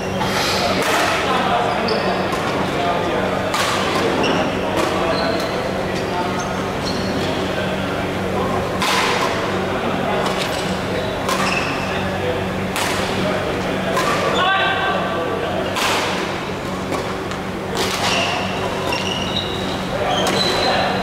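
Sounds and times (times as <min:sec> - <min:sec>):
steady low hum: 0:00.0 - 0:21.0
rackets hitting shuttlecock: 0:00.8 - 0:01.3, 0:08.7 - 0:09.6, 0:10.2 - 0:11.9, 0:12.7 - 0:13.3, 0:13.9 - 0:14.4, 0:15.6 - 0:19.1, 0:20.0 - 0:21.0
shoes squeaking on wooden court: 0:01.6 - 0:02.8, 0:03.8 - 0:07.5, 0:10.2 - 0:12.2, 0:16.8 - 0:21.0.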